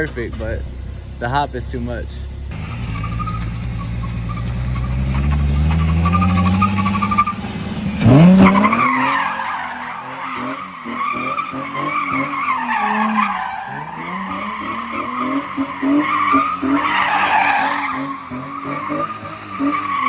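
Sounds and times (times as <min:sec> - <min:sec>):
car engine revving: 0:00.0 - 0:20.0
tyre squeal: 0:02.6 - 0:07.4, 0:08.1 - 0:20.0.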